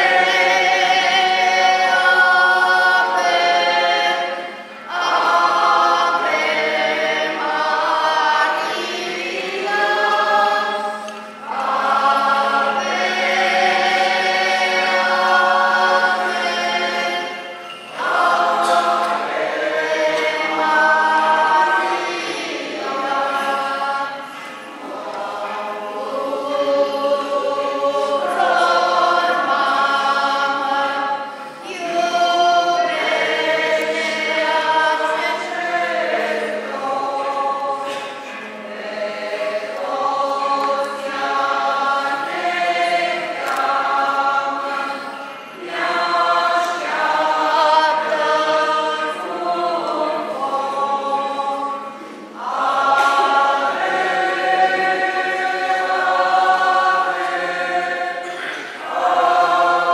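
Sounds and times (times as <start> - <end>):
congregation singing a hymn: 0.0 - 59.9.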